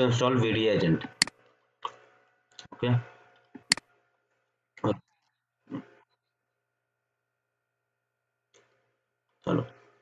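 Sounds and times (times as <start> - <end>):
computer mouse clicks: 1.0 - 2.0.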